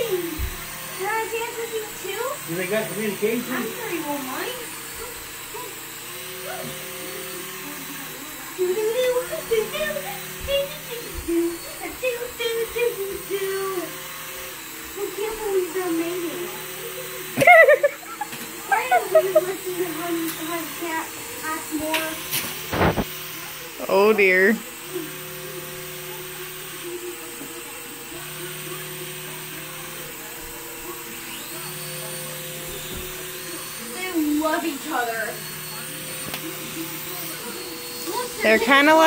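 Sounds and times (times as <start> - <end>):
small electric motors humming: 0.0 - 39.0.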